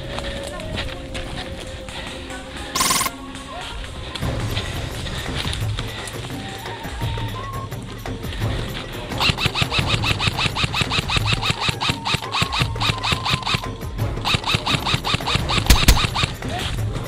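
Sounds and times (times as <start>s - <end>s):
background music: 0.0s - 17.0s
airsoft rifle firing: 2.8s - 3.1s, 14.3s - 16.4s
pellets striking twigs: 8.3s - 16.8s.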